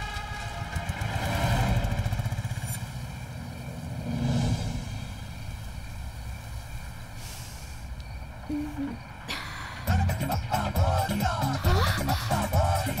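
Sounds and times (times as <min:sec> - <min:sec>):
vehicle engine rumbling: 0:00.0 - 0:13.0.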